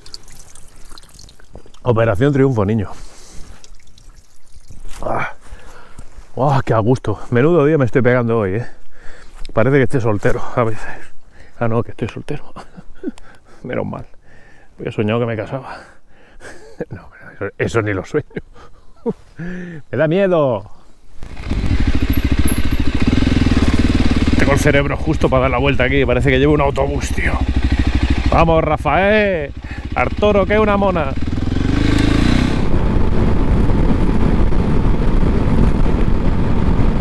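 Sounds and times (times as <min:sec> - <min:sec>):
water trickling: 0:00.0 - 0:02.0, 0:03.3 - 0:05.1
motorcycle engine running: 0:21.2 - 0:37.0.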